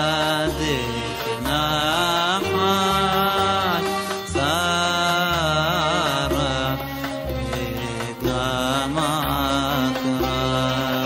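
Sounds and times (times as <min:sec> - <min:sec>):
instrumental accompaniment: 0:00.0 - 0:11.0
man singing melismatic chant: 0:00.0 - 0:11.0.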